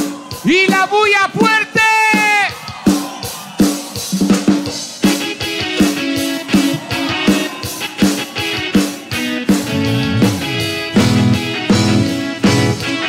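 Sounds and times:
drum kit beat: 0.0 - 13.0
live band music: 3.6 - 13.0.

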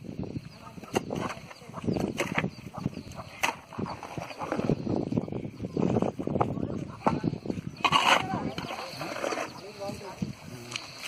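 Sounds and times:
digging tool striking ground: 3.3 - 3.7
people talking: 5.6 - 10.9.

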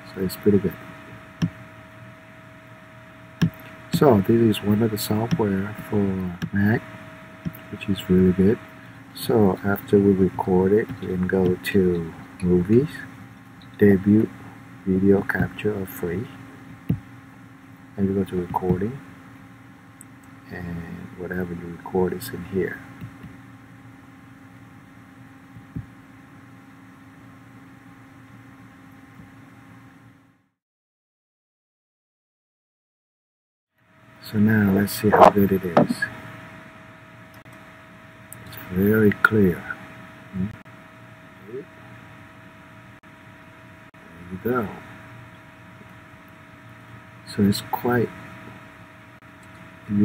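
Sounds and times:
steady background hiss: 0.0 - 27.5, 33.9 - 50.0
faint steady tones: 0.0 - 27.9
faint electrical hum: 0.0 - 30.5, 33.8 - 50.0
short low thump: 35.2 - 36.0.

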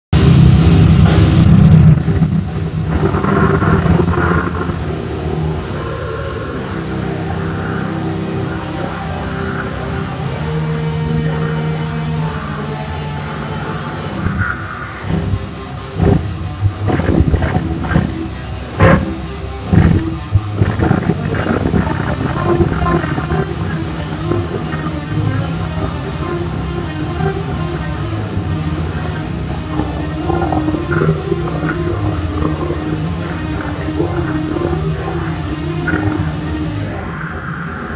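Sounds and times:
heavy metal guitar solo: 0.2 - 37.9.

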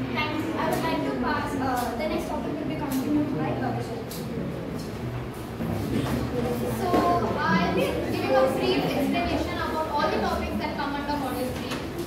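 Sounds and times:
several voices chattering: 0.0 - 12.0.

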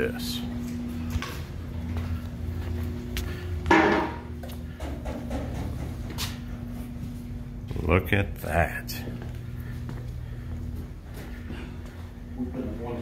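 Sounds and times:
ventilation hum: 0.0 - 13.0.

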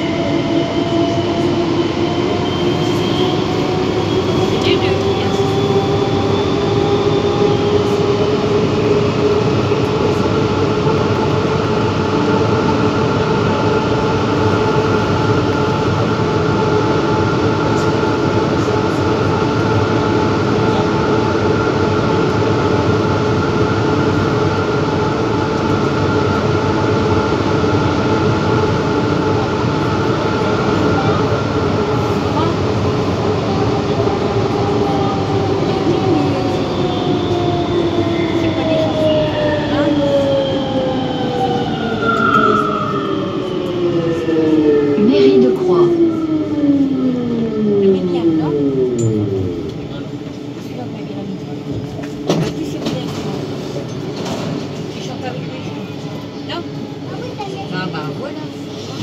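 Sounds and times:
metro train rolling in tunnel: 0.0 - 59.0
train whine: 0.0 - 59.0.

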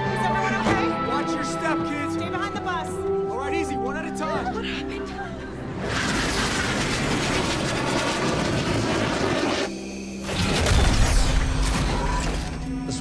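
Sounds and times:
orchestral score: 0.0 - 13.0.

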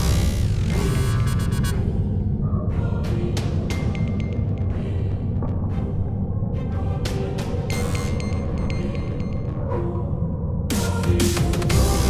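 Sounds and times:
electronic music with heavy bass: 0.0 - 1.8, 10.7 - 12.0.

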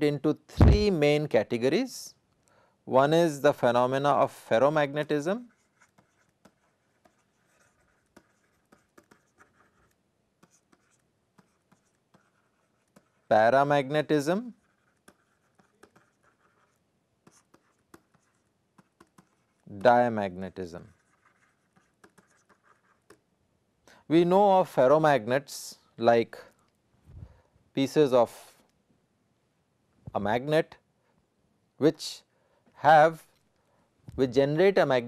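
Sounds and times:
stylus tapping and scratching: 5.0 - 23.3.

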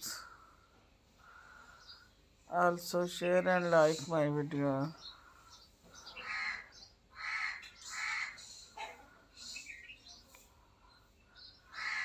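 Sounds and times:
harsh bird calls: 0.0 - 12.0.

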